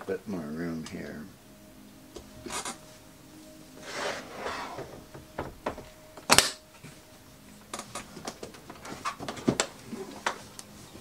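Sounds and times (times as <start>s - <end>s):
objects scraping on workbench: 3.8s - 4.9s.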